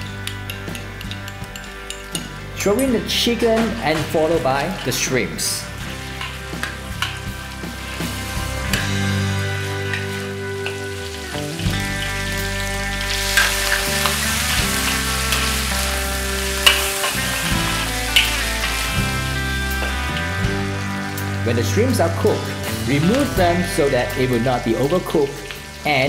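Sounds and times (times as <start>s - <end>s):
background music with held notes: 0.0s - 26.0s
food sizzling in a wok: 4.5s - 21.5s, 22.2s - 26.0s
metal spatula scraping a wok: 5.8s - 12.2s.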